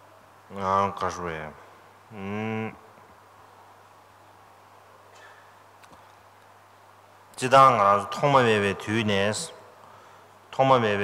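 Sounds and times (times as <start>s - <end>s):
faint electrical hum: 0.0s - 11.0s
man intoning a low syllable: 2.1s - 2.9s.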